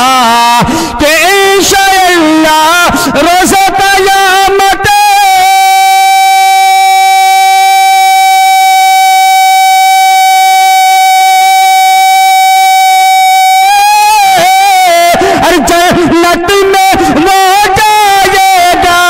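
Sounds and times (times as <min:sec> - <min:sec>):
man singing long high note: 0:00.0 - 0:19.0.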